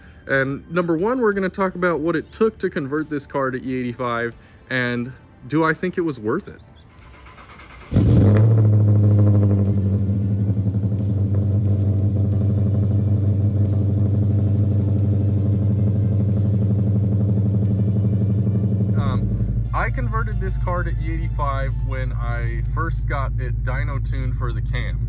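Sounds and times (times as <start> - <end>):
car engine starting and idling: 6.8 - 25.0
deep rumble: 7.9 - 25.0.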